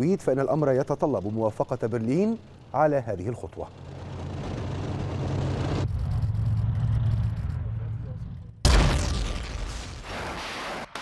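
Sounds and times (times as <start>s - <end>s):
tracked vehicles rumbling: 0.0s - 8.6s
howitzer firing boom: 8.6s - 10.4s.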